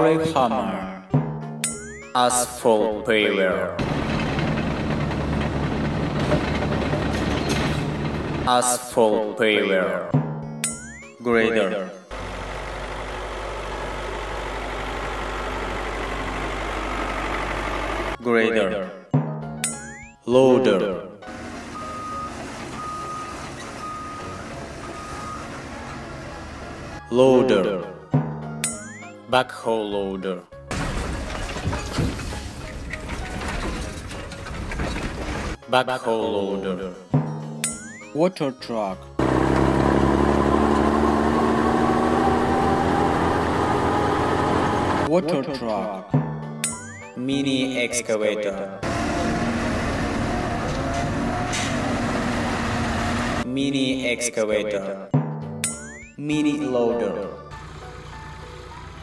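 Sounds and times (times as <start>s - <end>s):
loader engine running: 3.8s - 8.6s, 12.1s - 18.2s, 21.2s - 27.1s, 30.7s - 35.6s, 39.2s - 45.1s, 48.8s - 53.4s, 57.4s - 59.0s
reversing alarm beeps: 21.7s - 26.0s.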